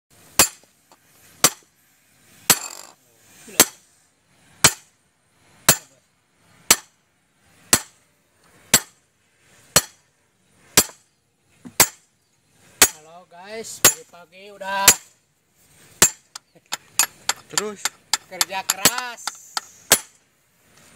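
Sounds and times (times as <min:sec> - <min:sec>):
sledgehammer striking steel: 0:00.3 - 0:00.7, 0:01.4 - 0:01.7, 0:04.6 - 0:04.9, 0:05.7 - 0:05.9, 0:06.7 - 0:06.9, 0:07.7 - 0:08.0, 0:08.7 - 0:09.0, 0:09.7 - 0:10.0, 0:10.8 - 0:11.0, 0:11.8 - 0:12.0, 0:12.8 - 0:13.0, 0:13.8 - 0:14.0, 0:16.0 - 0:20.2.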